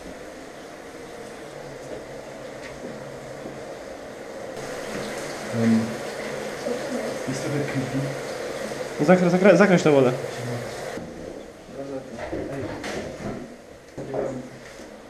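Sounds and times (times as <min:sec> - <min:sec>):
water running from a tap: 0:04.6 - 0:11.0.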